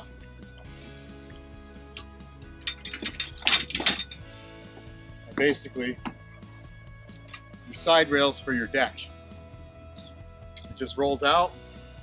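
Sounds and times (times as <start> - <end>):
background music: 0.0 - 12.0
metal clanks and rattles: 2.4 - 6.3, 7.1 - 7.6.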